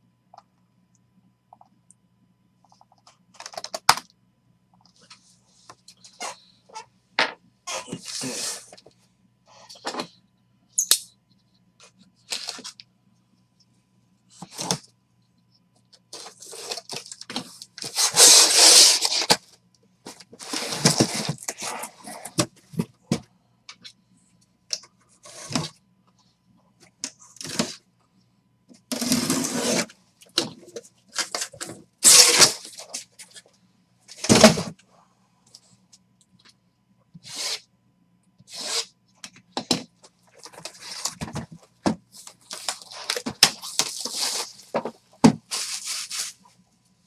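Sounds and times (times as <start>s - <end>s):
packing tape ripping: 16.2s - 19.4s, 31.2s - 32.9s.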